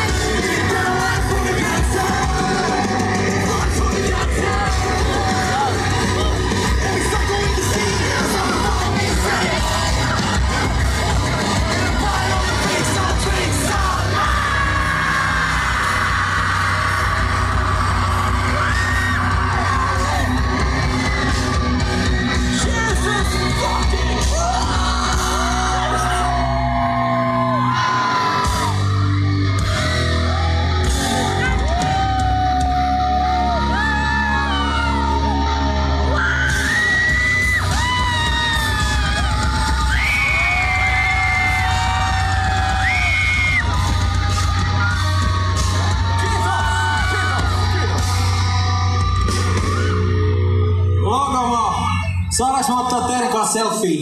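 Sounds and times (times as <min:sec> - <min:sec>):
live rock band playing loud: 0:00.0 - 0:51.0
sung and shouted lead vocals: 0:00.0 - 0:54.0.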